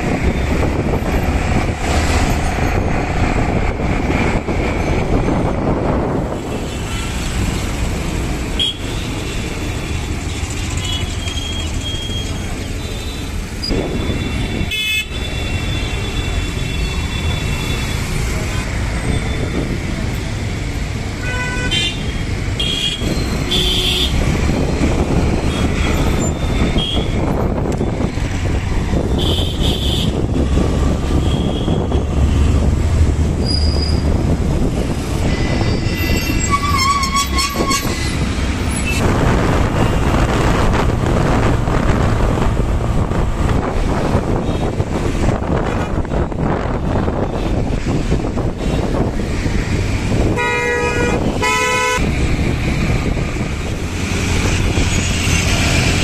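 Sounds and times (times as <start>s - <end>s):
rumble of road traffic: 0.0s - 56.0s
vehicle horns tooting: 21.2s - 24.2s, 25.5s - 27.3s, 29.1s - 30.2s, 31.1s - 32.0s, 35.7s - 39.0s, 50.2s - 52.0s.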